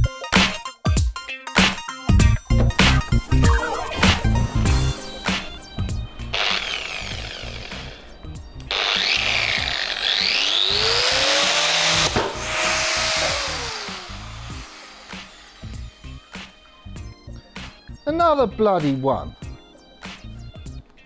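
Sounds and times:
angle grinder grinding: 0:02.4 - 0:17.0
grinding disc cracking: 0:04.1 - 0:16.8.

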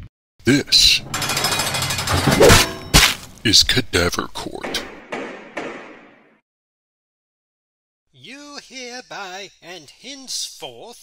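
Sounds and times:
rapid continuous rattling: 0:00.8 - 0:02.9
sharp slam: 0:01.5 - 0:03.3.

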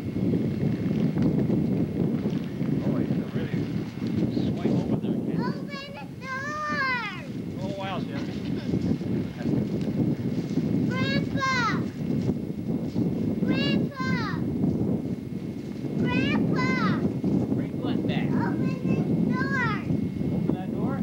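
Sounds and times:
wind buffeting microphone: 0:00.0 - 0:21.0
high-pitched voice calling out: 0:10.9 - 0:11.9, 0:13.5 - 0:14.4, 0:16.0 - 0:17.0.

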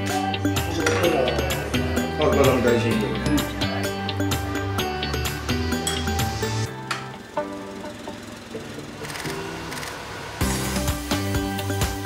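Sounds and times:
background music with light beat: 0:00.0 - 0:12.0.

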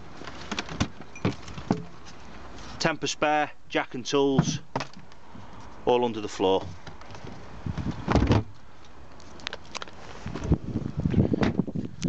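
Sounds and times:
car boot floor panel thud: 0:08.0 - 0:08.5.

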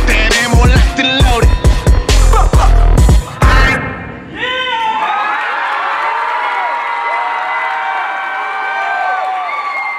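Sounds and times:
audience cheering and screaming: 0:04.3 - 0:09.9
audience clapping: 0:05.3 - 0:09.9.

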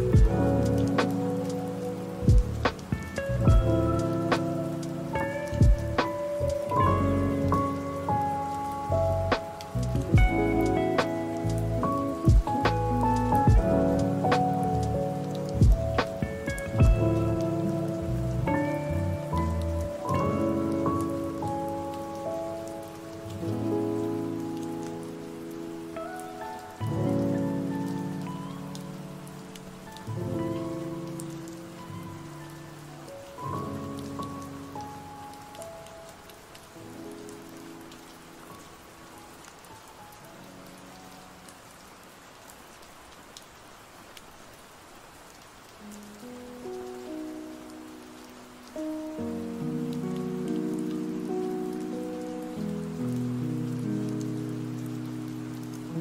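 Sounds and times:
mellow lofi music: 0:00.0 - 0:44.0, 0:44.8 - 0:56.0
rain: 0:00.0 - 0:56.0.

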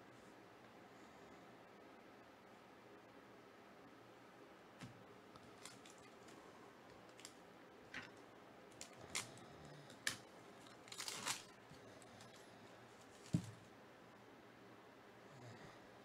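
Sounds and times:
light crackles and clicks of cards: 0:04.8 - 0:13.7
foil wrapper crinkling: 0:05.4 - 0:06.4, 0:08.8 - 0:11.6.

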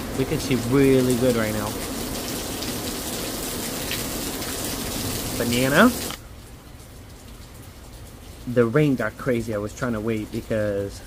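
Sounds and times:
heavy rain pouring: 0:00.0 - 0:11.0.

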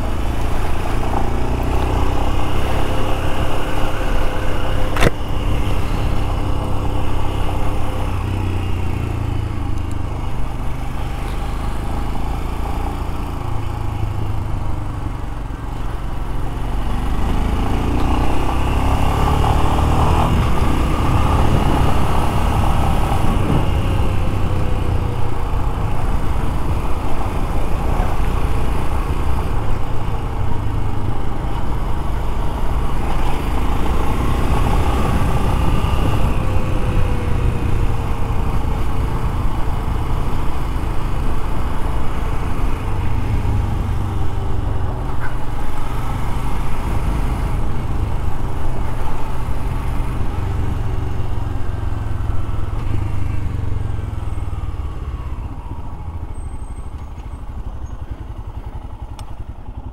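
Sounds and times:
motorcycle engine running: 0:00.0 - 0:59.9.

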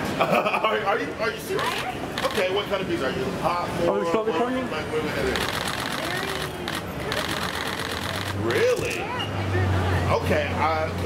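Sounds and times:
camera shutters clicking: 0:02.2 - 0:02.4, 0:05.4 - 0:09.0.

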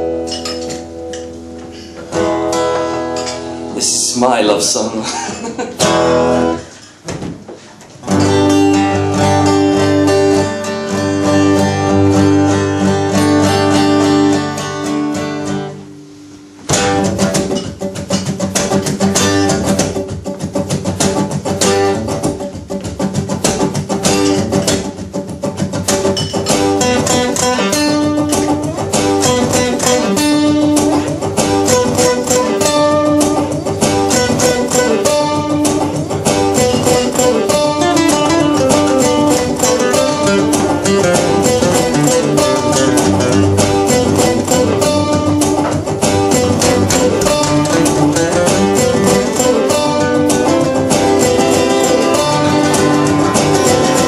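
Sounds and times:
acoustic guitar chords ringing: 0:00.0 - 0:07.0, 0:08.0 - 0:54.0
quick picked guitar notes: 0:08.0 - 0:54.0.

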